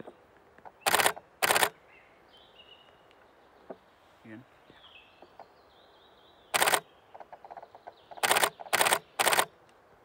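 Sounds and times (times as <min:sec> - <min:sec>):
camera shutter clicks: 0:00.8 - 0:01.8, 0:06.6 - 0:06.8, 0:08.2 - 0:09.5.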